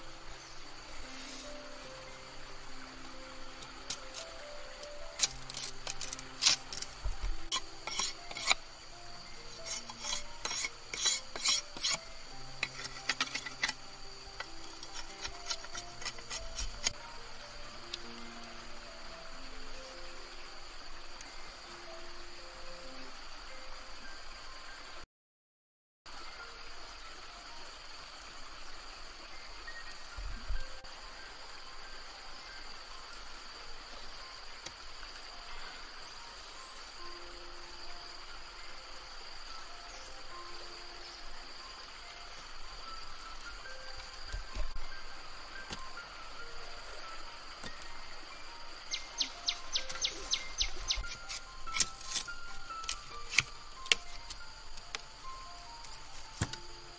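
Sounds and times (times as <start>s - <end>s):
high insect drone: 0.0s - 25.0s, 26.1s - 56.9s
slow background music: 0.0s - 25.0s, 26.1s - 56.9s.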